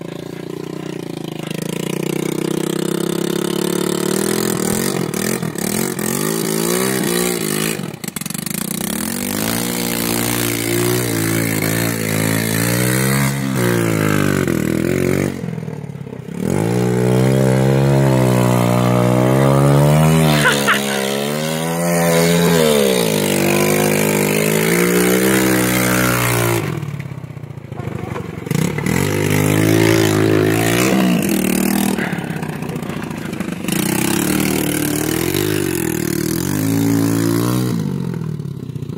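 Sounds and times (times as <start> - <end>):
quad bike engine revving: 0.0 - 38.9.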